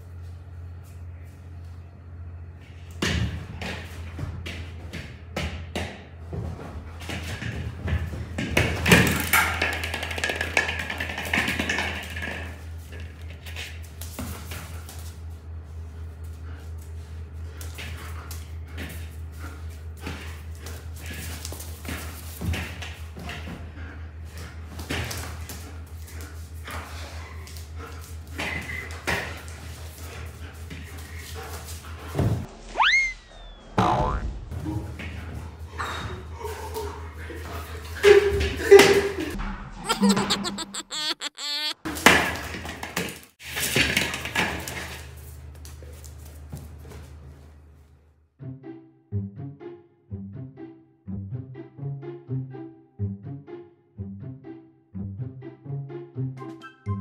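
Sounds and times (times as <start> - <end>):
low hum: 0.0 - 3.4.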